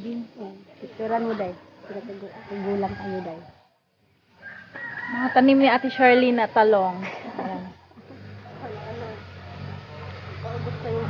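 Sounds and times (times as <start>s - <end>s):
rooster crowing: 1.8s - 3.7s, 4.4s - 9.0s.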